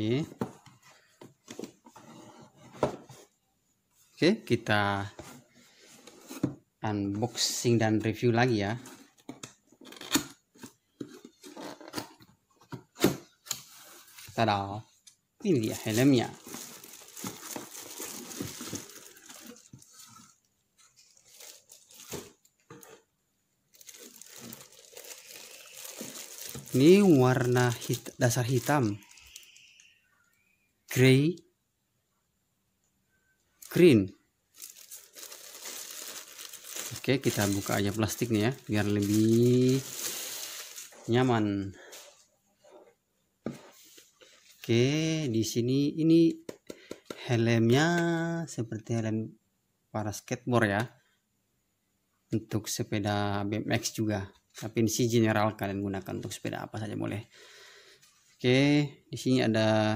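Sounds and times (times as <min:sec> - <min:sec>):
plastic wrapping crinkling: 0:15.5 - 0:23.0, 0:23.7 - 0:29.5, 0:34.5 - 0:41.2.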